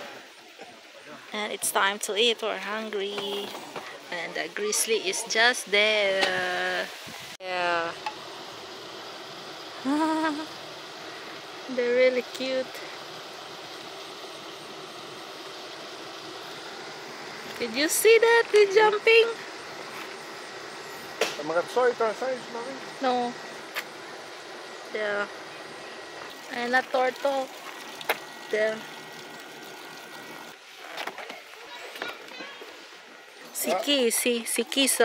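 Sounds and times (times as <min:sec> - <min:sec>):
outdoor background noise: 0:00.0 - 0:35.0.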